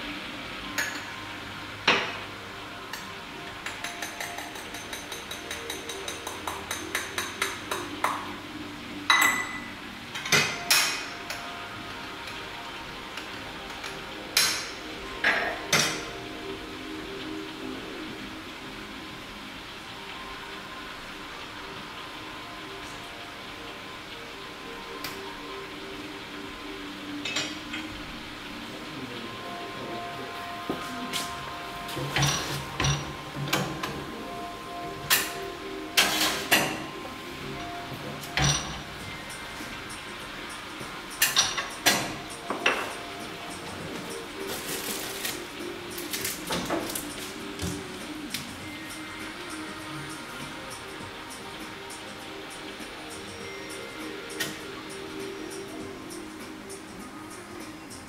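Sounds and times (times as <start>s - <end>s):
soft background music: 0.0s - 58.0s.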